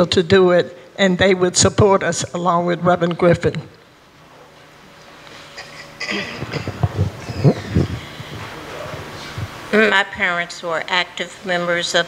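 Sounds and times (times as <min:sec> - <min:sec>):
person coughing: 0:05.5 - 0:08.1
microphone handling bumps: 0:06.1 - 0:09.7.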